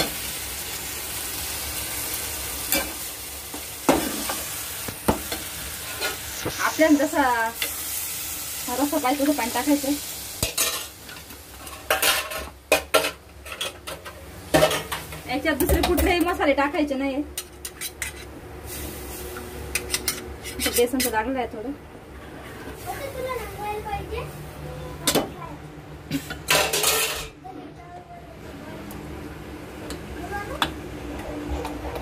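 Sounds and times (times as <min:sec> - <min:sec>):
faint sizzle from pan: 0:00.0 - 0:17.5, 0:18.1 - 0:20.2, 0:22.3 - 0:25.5.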